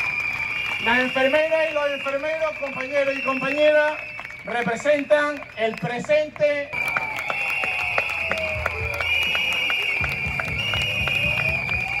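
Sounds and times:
shrill whistling: 0:00.0 - 0:05.6, 0:06.7 - 0:12.0
crowd clapping and cheering: 0:00.0 - 0:12.0.

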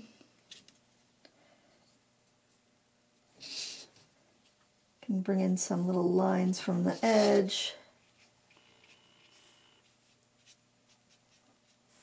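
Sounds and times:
paintbrush brushing on paper: 0:06.9 - 0:12.0.

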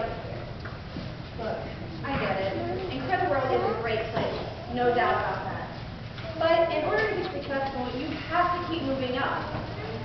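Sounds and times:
woman speaking in a hall: 0:01.4 - 0:09.7.

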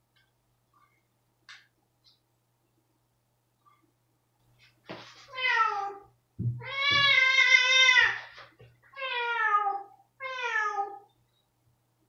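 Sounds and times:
cat meowing: 0:05.3 - 0:08.3, 0:09.0 - 0:11.1.

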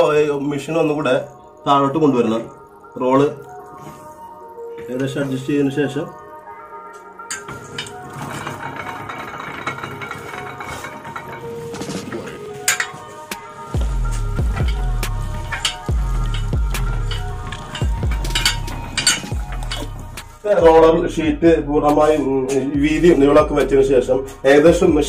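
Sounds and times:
metal clinks and knocks of roller mill: 0:07.2 - 0:20.5.

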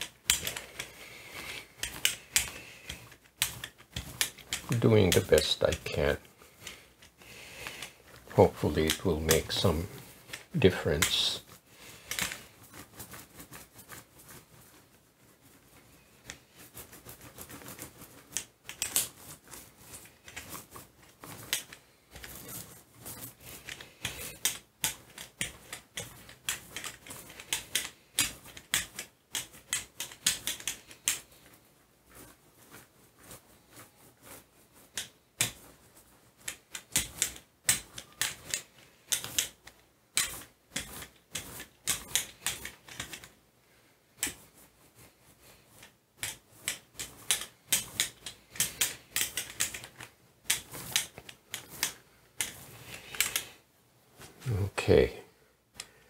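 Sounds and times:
brayer rolling through paint: 0:00.0 - 0:55.2.

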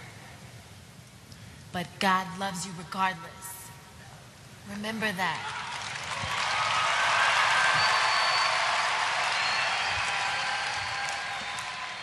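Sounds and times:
audience applauding: 0:05.4 - 0:12.0.

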